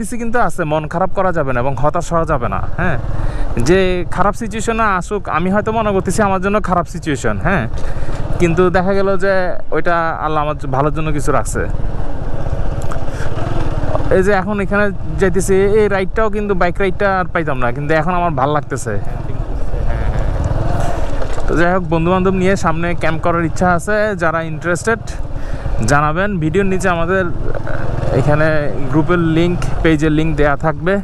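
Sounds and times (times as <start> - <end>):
man speaking: 0.0 - 11.7, 14.0 - 31.0
motorcycle engine running: 10.2 - 31.0.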